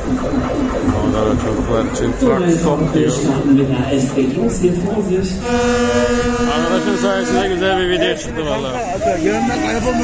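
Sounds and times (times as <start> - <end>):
amplified voices: 0.0 - 10.0
long held note: 5.4 - 7.5.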